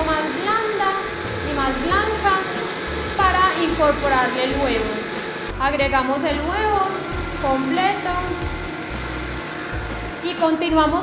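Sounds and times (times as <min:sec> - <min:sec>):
background music: 0:00.0 - 0:11.0
stand mixer running: 0:00.0 - 0:11.0.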